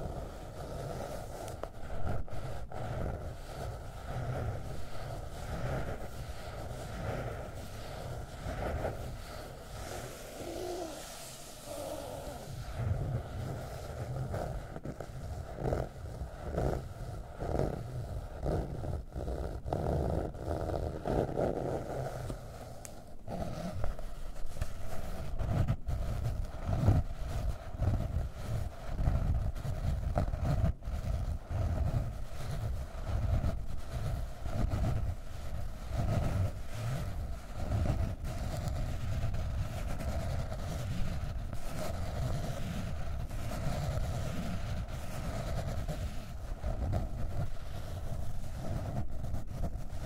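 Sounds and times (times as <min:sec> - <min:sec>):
fingernails scratching notebook cover: 0:00.0 - 0:50.0.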